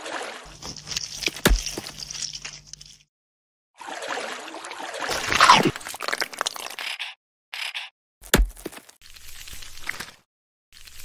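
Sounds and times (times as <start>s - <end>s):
chewing crunches: 0.5s - 3.0s
loud bite and crunch: 0.5s - 3.1s, 5.1s - 7.2s.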